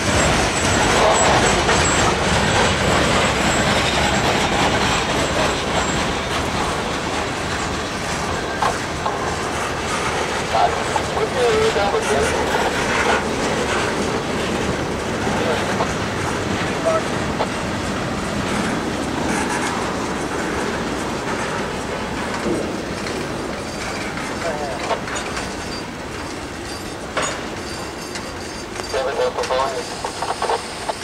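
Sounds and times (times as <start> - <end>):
train wheels clickety-clack: 0.0 - 31.0
faint wheel squeal: 27.6 - 31.0.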